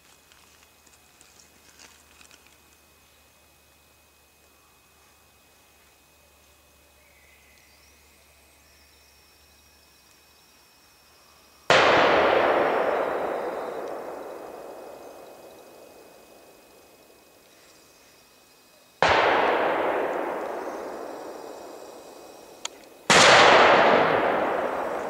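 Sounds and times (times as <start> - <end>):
gunshot echoing: 11.7 - 16.9, 19.0 - 25.0.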